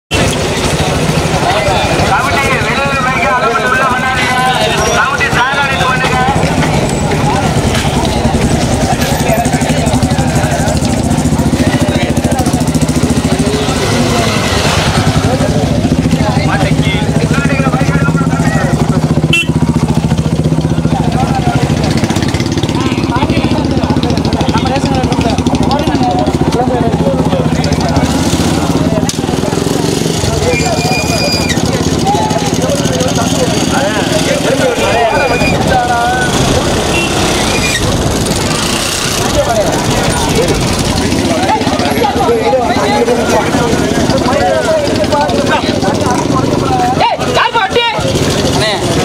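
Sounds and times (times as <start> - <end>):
motorcycle engine running: 0.1 - 49.0
men talking: 0.2 - 19.3, 20.0 - 49.0.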